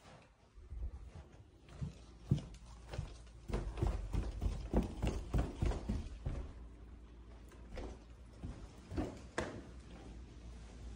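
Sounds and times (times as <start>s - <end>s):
footsteps down carpeted stairs: 0.0s - 10.8s.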